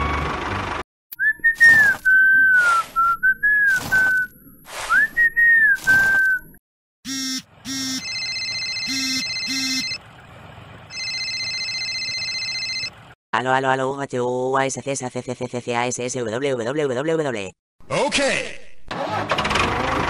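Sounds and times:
person whistling a tune: 1.2 - 4.3, 4.9 - 6.5
broom swishing on sand: 1.6 - 6.4
phone ringtone beeps: 7.1 - 10.0, 10.9 - 12.9.

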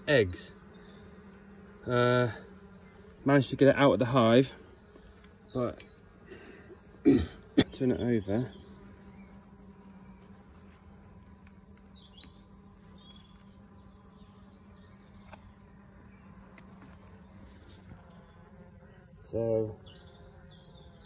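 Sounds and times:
honeybees buzzing: 0.0 - 21.0.

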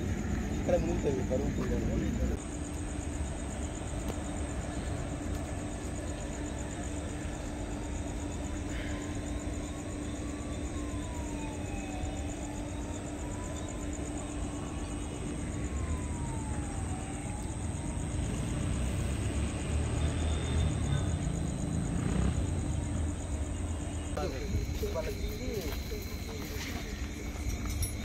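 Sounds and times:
faint siren wailing: 0.0 - 2.5, 5.0 - 28.0.

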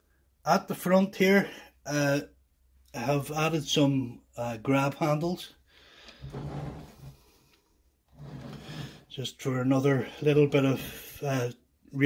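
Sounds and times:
rubbing and scraping of wooden model: 6.0 - 9.2.

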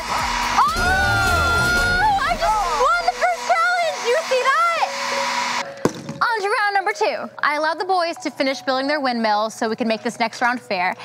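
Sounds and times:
people whooping and shouting: 0.0 - 3.2
hair dryer blowing: 0.0 - 6.1.

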